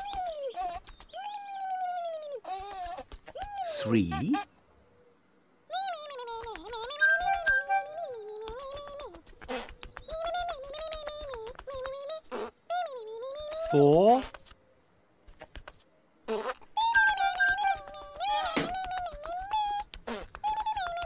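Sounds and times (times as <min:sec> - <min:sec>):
squeaky wordless puppet chatter: 0:00.0 - 0:04.5, 0:05.7 - 0:14.5, 0:16.3 - 0:21.0.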